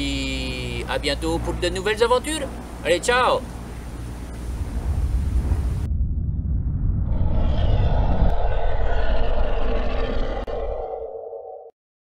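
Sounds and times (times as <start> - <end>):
deep rumble: 4.3 - 11.7
rushing whoosh: 4.6 - 11.5.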